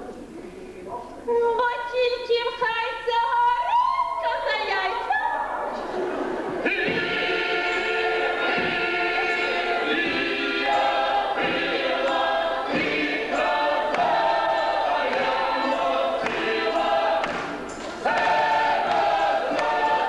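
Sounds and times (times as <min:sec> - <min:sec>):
mixed choir singing in harmony: 0:05.8 - 0:20.0.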